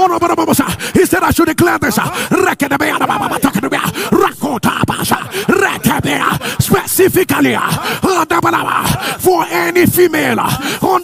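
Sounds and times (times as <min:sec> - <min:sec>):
man praying rapidly: 0:00.0 - 0:11.0.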